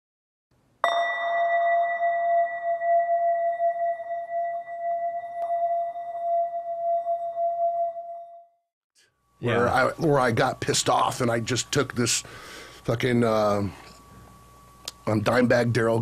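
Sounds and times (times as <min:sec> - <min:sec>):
singing bowl ringing: 0:00.8 - 0:16.0.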